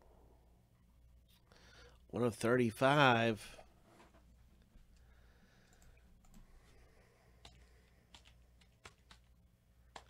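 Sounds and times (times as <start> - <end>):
computer mouse clicks: 5.6 - 6.5, 7.4 - 9.3.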